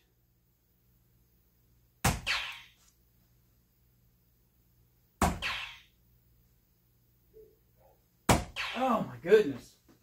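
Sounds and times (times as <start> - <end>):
dart hitting plastic dartboard: 2.0 - 2.7, 5.2 - 5.8, 8.3 - 8.8.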